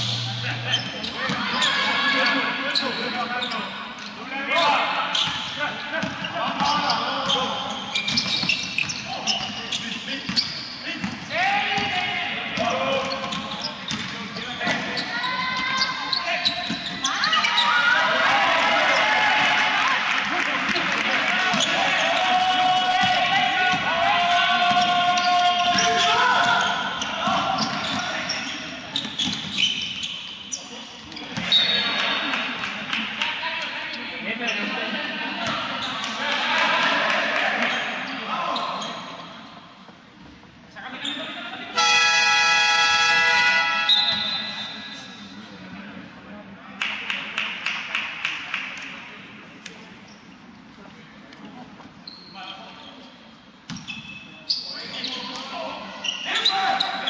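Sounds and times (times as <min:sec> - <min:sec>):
players calling out: 0:00.0 - 0:32.8
ball bouncing on court: 0:08.0 - 0:09.6, 0:12.6 - 0:15.9.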